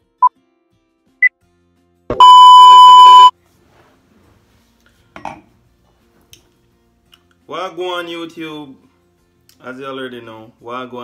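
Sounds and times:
electronic beep: 0:02.1 - 0:03.3.

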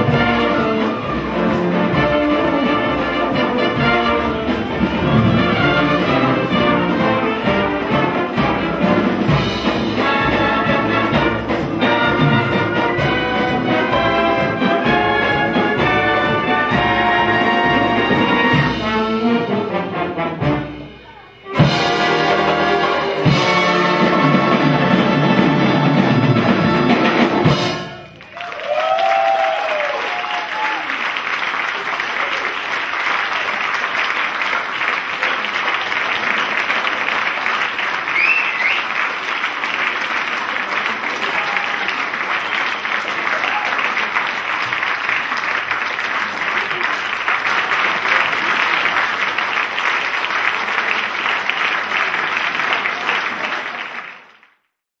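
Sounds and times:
audience applauding: 0:00.0 - 0:18.6, 0:26.9 - 0:54.8.

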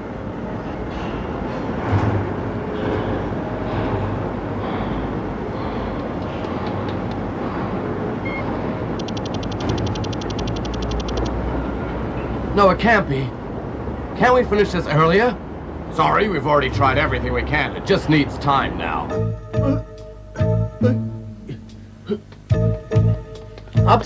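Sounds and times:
machinery rumble and hum: 0:00.0 - 0:12.7
rapid electronic ticking: 0:09.0 - 0:11.4.

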